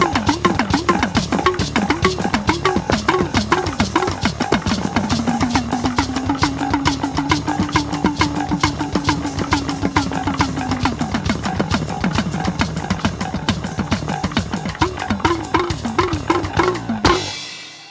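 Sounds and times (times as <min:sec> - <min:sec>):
hand-played drum: 0:00.0 - 0:17.9
talking drum struck with stick: 0:00.0 - 0:17.9.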